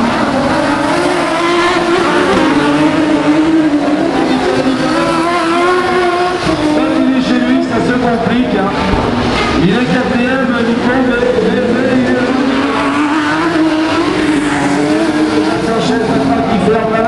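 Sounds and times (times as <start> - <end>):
race car engines revving: 0.0 - 17.0.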